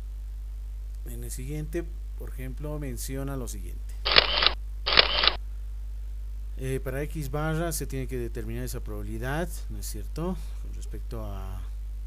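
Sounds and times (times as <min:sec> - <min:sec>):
camera shutter sound effect: 0:04.1 - 0:05.4.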